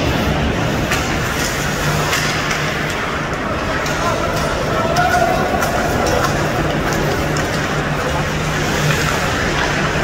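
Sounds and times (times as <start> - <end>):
low arena hum: 0.0 - 10.0.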